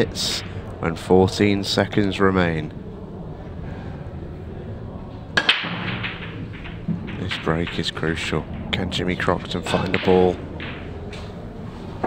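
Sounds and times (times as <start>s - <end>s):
pool balls clattering: 0.0s - 1.4s, 4.9s - 12.0s
cue striking pool balls: 5.3s - 12.0s.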